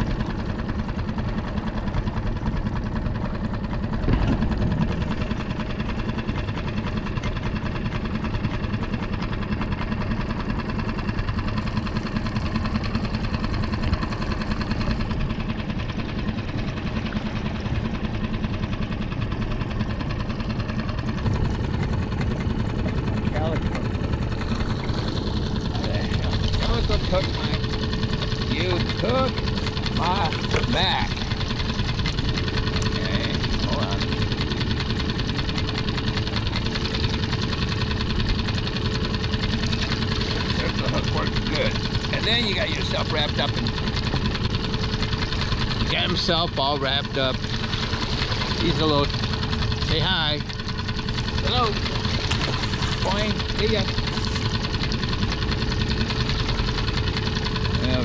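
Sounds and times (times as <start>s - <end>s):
outboard motor droning: 0.0s - 58.0s.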